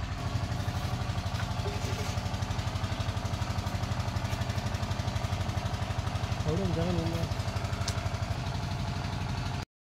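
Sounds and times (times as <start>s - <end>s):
engine idling: 0.0s - 9.6s.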